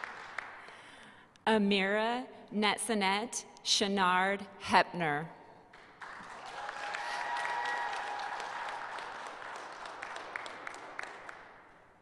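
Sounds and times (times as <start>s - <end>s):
audience applauding: 0.0s - 0.8s, 6.0s - 11.8s
separate claps: 7.6s - 11.9s.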